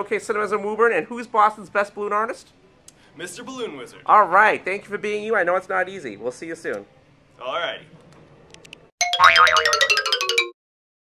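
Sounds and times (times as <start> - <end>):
cartoon musical sting: 9.0 - 10.5.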